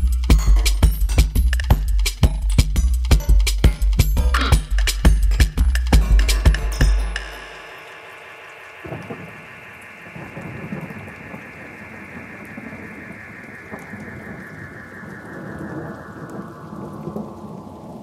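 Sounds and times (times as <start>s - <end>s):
low rumble: 5.6s - 18.0s
wash of noise: 7.1s - 18.0s.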